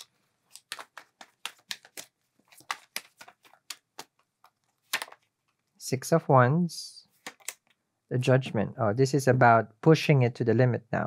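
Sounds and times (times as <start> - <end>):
cards being shuffled by hand: 0.0 - 5.6, 7.2 - 7.8.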